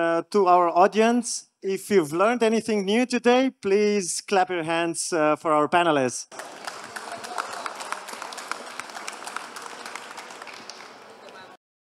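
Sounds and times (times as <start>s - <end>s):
audience applauding: 6.3s - 11.6s.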